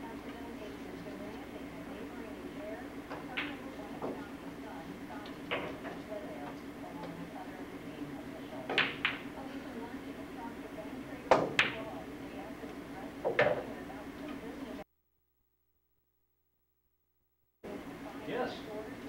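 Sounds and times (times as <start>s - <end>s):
steady low hum: 0.0s - 19.0s
pool balls clicking: 8.6s - 9.4s, 11.3s - 12.0s.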